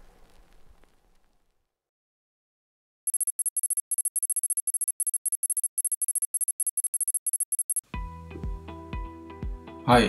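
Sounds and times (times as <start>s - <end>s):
high-pitched electronic beeps: 3.1s - 7.8s.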